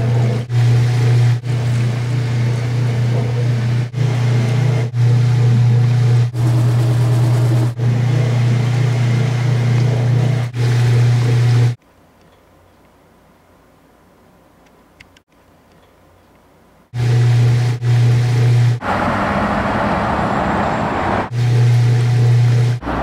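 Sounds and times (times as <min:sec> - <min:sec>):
steady low hum: 0:00.0 - 0:12.1, 0:16.5 - 0:19.0, 0:20.8 - 0:23.0.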